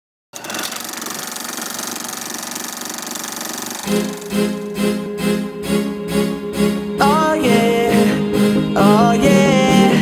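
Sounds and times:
fast mechanical rattle: 0:00.4 - 0:04.8
guitar music: 0:03.9 - 0:08.8
person singing: 0:06.9 - 0:10.0.

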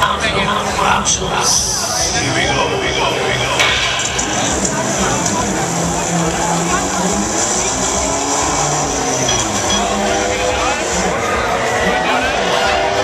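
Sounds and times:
crowd voices: 0:00.0 - 0:13.0
music: 0:00.0 - 0:13.0.

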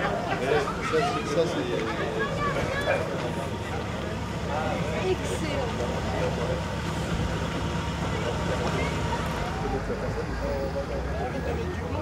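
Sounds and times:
people talking: 0:00.0 - 0:12.0
car engine idling: 0:02.4 - 0:10.3.

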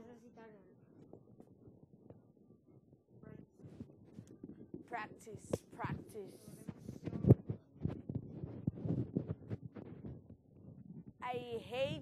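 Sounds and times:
muffled thumps and knocks: 0:03.6 - 0:11.2.

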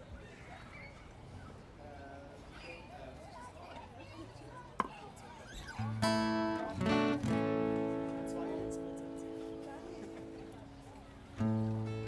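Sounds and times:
murmur of voices: 0:00.0 - 0:12.0
guitar note ringing: 0:06.0 - 0:10.7.

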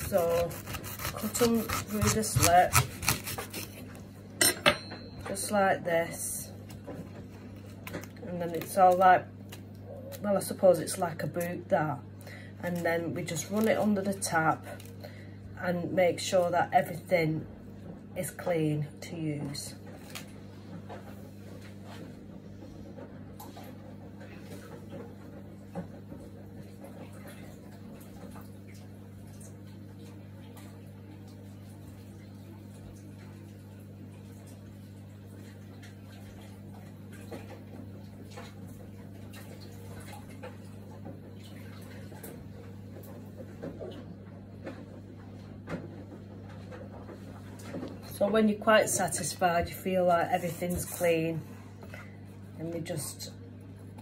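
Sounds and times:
tap running: 0:00.0 - 0:05.4
steady low hum: 0:00.0 - 0:54.0.

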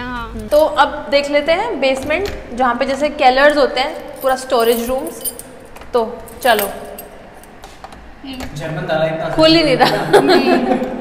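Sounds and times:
keys jangling: 0:03.4 - 0:07.8.

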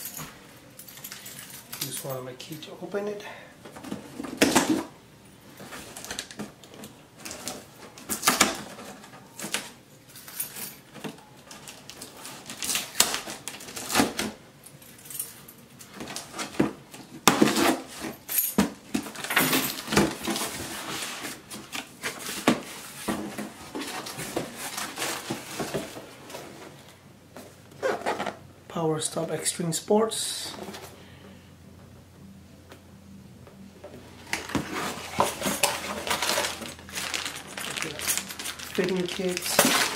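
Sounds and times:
cardboard box rustling: 0:34.4 - 0:39.9.

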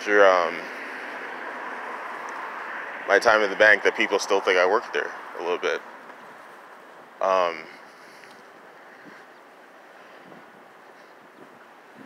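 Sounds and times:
outdoor background noise: 0:00.0 - 0:12.0
wind on microphone: 0:10.2 - 0:12.0.

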